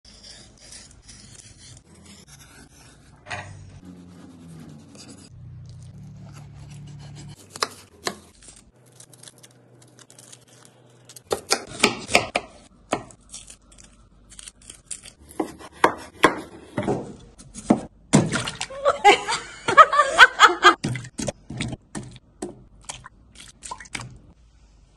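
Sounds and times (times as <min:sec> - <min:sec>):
peeler scraping potato skin: 0:13.0 - 0:16.1.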